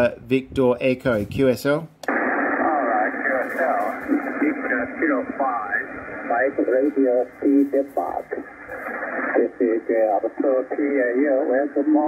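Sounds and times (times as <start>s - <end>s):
radio band hiss: 2.1s - 12.0s
thin radio voice: 2.6s - 12.0s.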